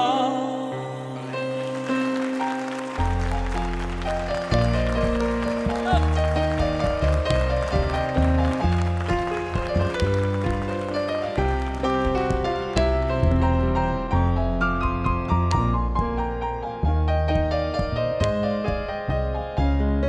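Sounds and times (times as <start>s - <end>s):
grand piano playing: 0.0s - 20.0s
upright double bass: 3.0s - 20.0s.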